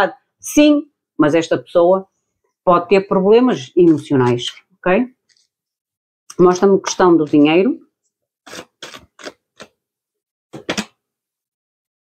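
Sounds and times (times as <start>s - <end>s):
cards being shuffled: 8.5s - 9.7s.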